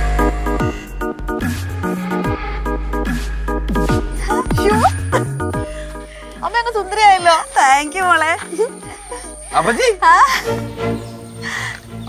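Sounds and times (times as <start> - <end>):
background music low notes: 0.0 - 12.0.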